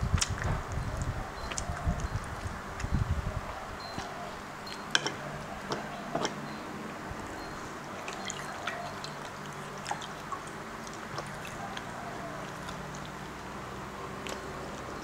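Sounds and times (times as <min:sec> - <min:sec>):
wet eating clicks and smacks: 0:00.0 - 0:03.1, 0:08.0 - 0:15.0.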